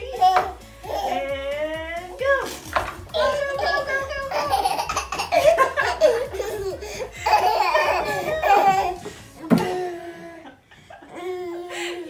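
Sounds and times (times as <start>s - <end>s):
baby giggling: 0.0s - 1.5s, 3.1s - 12.0s.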